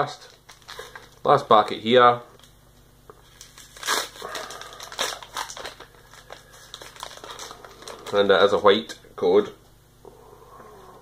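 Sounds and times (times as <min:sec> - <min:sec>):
foil wrapper crinkling: 0:00.2 - 0:01.5, 0:03.2 - 0:08.6.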